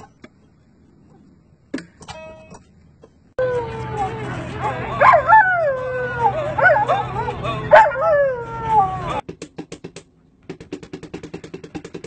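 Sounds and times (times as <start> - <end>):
dog howling: 3.5 - 9.2.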